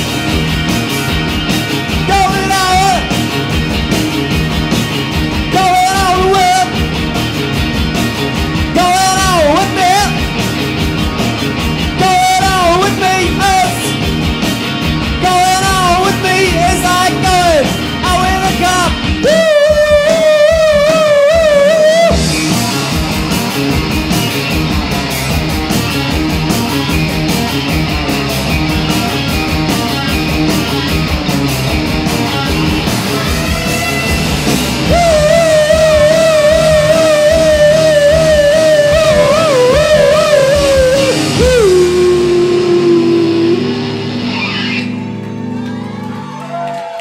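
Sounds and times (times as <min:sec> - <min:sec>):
drums: 0:00.0 - 0:47.0
electric guitars: 0:00.0 - 0:47.0
electric guitar chord ringing: 0:26.5 - 0:46.0.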